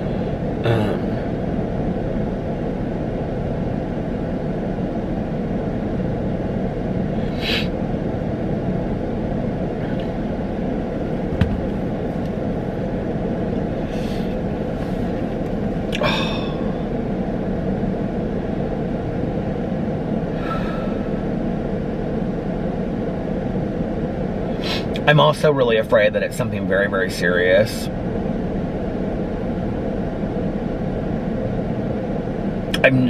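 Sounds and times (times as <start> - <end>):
car cabin hum: 0.0 - 33.0
man sighing heavily: 0.6 - 1.3, 16.0 - 16.8, 20.4 - 21.2.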